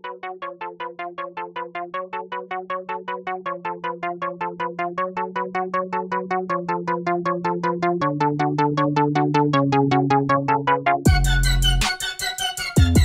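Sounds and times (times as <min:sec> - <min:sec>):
synthesizer chord stabs: 0:03.4 - 0:13.0.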